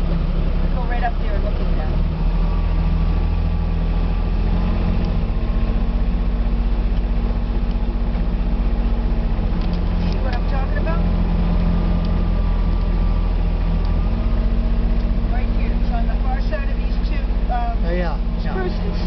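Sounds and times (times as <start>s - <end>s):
utility vehicle engine running: 0.0s - 19.0s.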